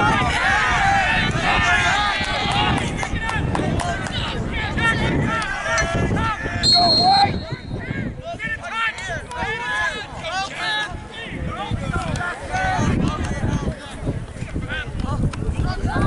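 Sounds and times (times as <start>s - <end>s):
voices shouting: 0.0s - 13.6s
shrill referee's whistle blast: 6.6s - 7.8s.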